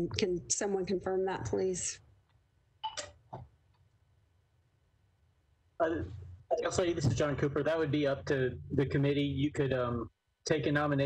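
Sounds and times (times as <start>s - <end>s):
faint low hum: 4.4s - 11.0s
person saying uh: 5.8s - 11.0s.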